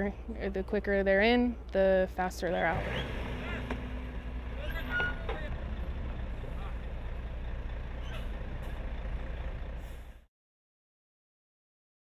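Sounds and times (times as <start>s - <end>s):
truck engine idling: 1.6s - 10.3s.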